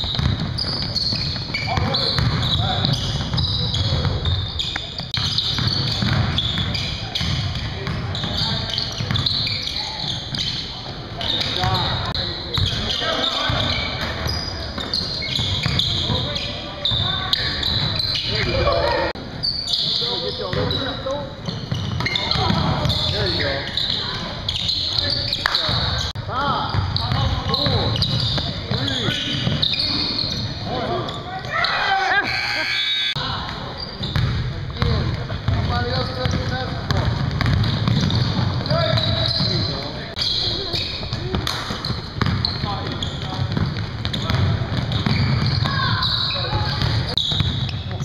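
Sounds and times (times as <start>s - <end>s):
basketball dribbling on hardwood: 0.0s - 4.2s, 34.2s - 39.2s, 42.2s - 42.5s, 43.3s - 45.8s
sneakers squeaking: 0.0s - 48.0s
players calling out: 0.1s - 34.2s.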